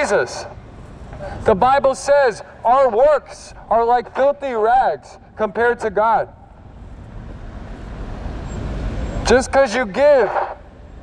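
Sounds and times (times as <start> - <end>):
vehicle engine and tyre noise: 0.0 - 11.0.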